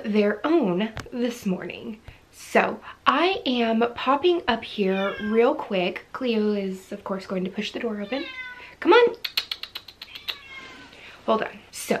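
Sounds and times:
cat meowing softly: 4.9s - 5.5s, 8.0s - 8.8s, 10.0s - 10.9s.

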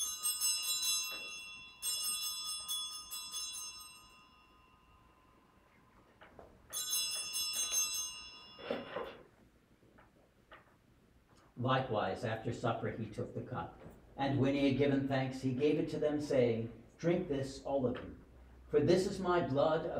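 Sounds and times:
altar bells ringing: 0.0s - 9.4s.

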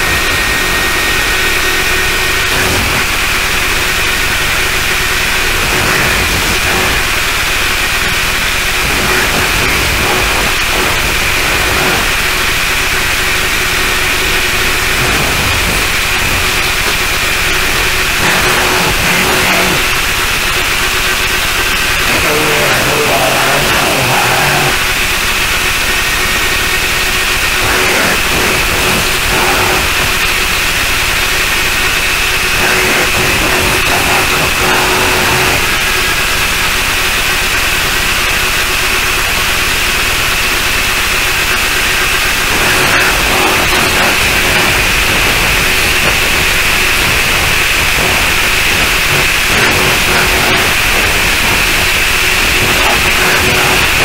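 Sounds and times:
distorted static noise: 0.0s - 54.0s
high-pitched whine: 0.0s - 54.0s
low hum: 0.0s - 54.0s.

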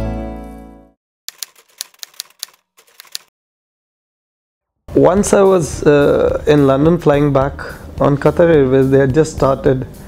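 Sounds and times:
typewriter key clacks: 1.3s - 3.3s.

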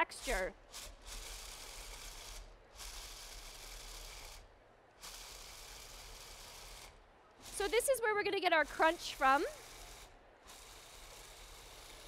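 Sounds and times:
food processor grinding: 0.1s - 4.4s, 5.0s - 7.9s, 8.7s - 12.0s.

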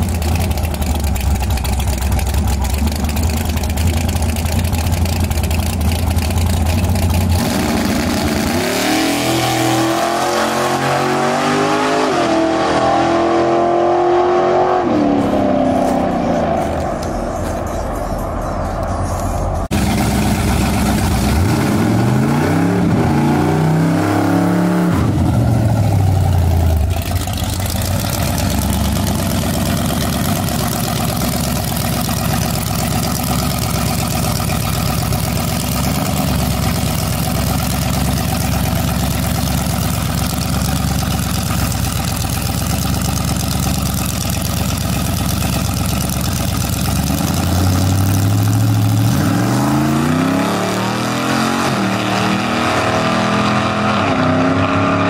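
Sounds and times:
pickup truck engine revving: 5.3s - 17.1s, 19.7s - 55.0s.

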